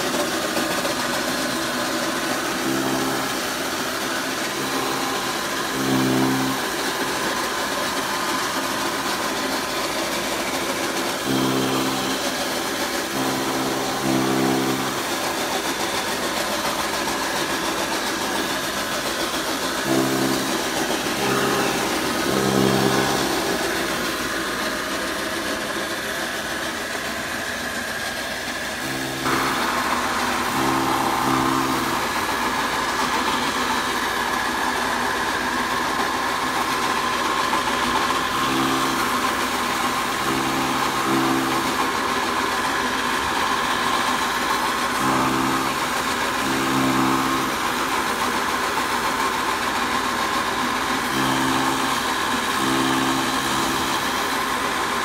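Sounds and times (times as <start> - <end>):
chaff cutter machine whirring: 0.0 - 55.0
low hum: 2.4 - 27.2, 28.6 - 42.2.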